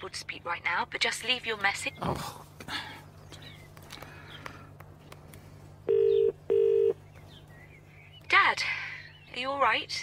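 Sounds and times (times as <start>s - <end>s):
low steady hum: 0.0s - 10.0s
telephone ringing tone: 5.9s - 7.0s.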